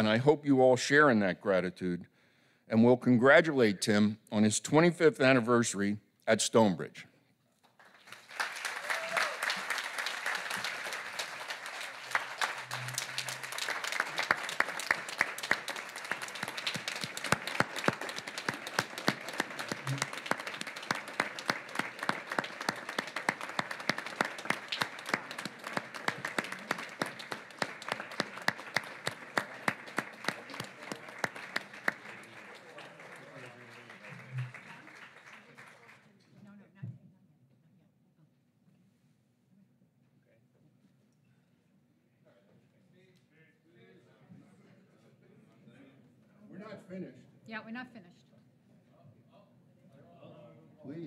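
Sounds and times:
roomful of people applauding: 7.6 - 36.3.

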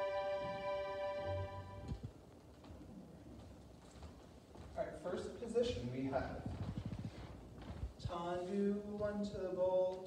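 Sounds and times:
footsteps on wooden floor: 6.5 - 8.0.

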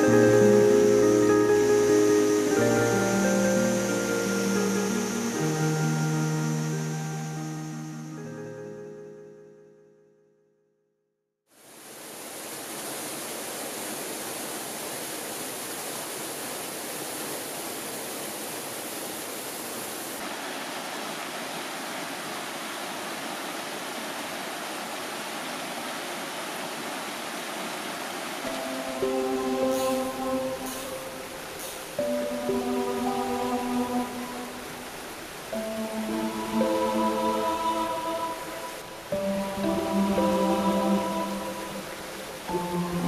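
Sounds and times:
stream water rushing: 0.0 - 8.4, 11.5 - 43.0
soft background music: 0.0 - 10.2, 28.5 - 43.0.

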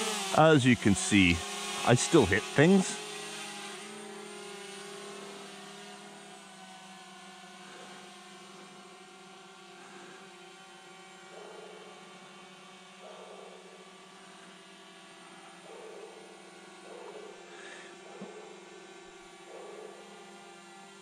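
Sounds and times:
drone propellers whining: 0.0 - 10.3.

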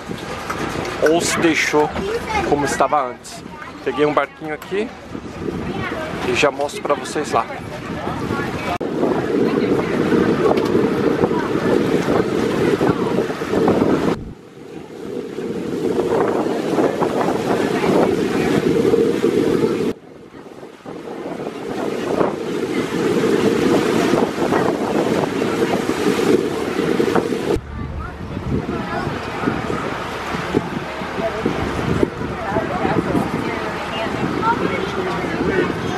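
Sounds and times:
water rushing: 0.0 - 35.9
wind buffeting microphone: 0.0 - 35.9.

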